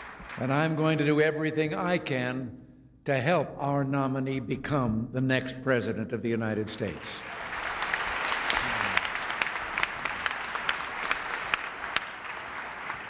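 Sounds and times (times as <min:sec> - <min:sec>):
audience applauding: 0:00.0 - 0:01.0, 0:06.9 - 0:13.0.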